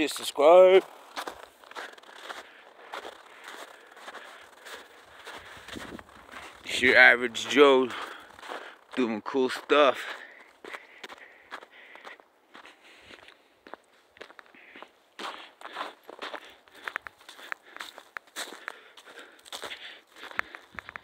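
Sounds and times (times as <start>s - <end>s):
footsteps on snow and dry grass: 0.0s - 21.0s.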